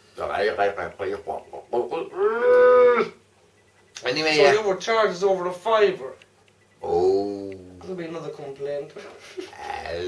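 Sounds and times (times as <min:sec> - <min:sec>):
person groaning drawn-out vowel: 0:02.1 - 0:03.2.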